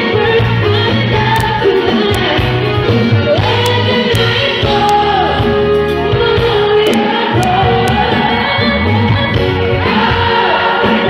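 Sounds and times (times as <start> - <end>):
backing singers: 0.0 - 11.0
live rock band: 0.0 - 11.0
woman singing lead: 0.0 - 11.0.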